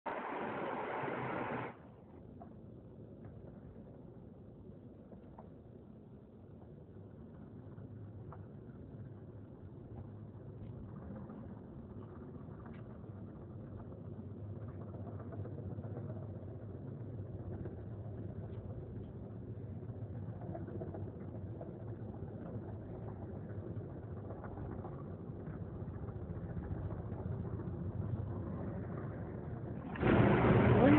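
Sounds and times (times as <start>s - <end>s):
low background rumble: 0.1s - 30.9s.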